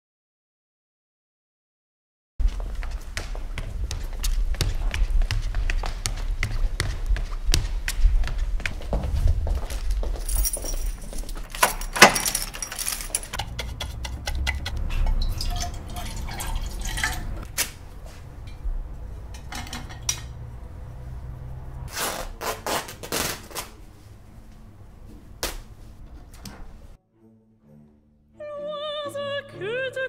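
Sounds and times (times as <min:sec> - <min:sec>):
keys jingling at a door lock: 0:10.0 - 0:13.4
paintbrushes clinking on a metal can: 0:11.7 - 0:17.5.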